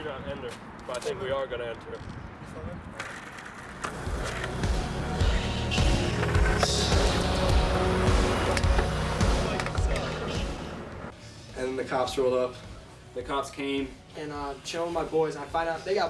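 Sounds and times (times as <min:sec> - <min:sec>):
skateboard wheels rolling on asphalt: 0:01.5 - 0:10.3.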